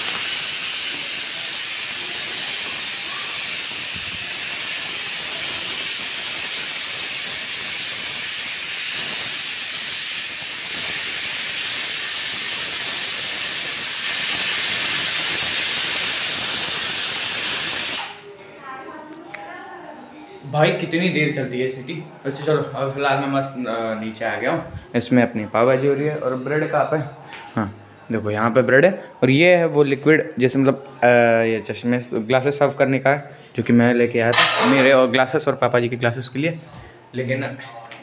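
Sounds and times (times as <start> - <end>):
pressure cooker steam hissing: 0.0 - 18.3.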